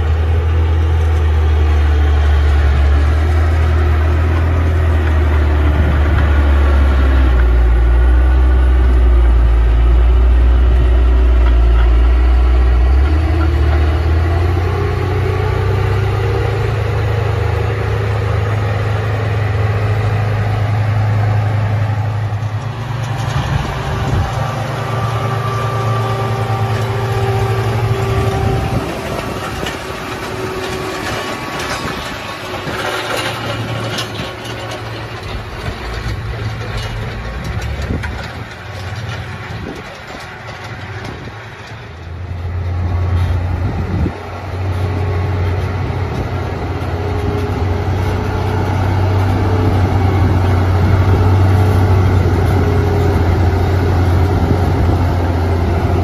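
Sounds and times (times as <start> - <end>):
diesel engine droning: 0.0 - 56.0.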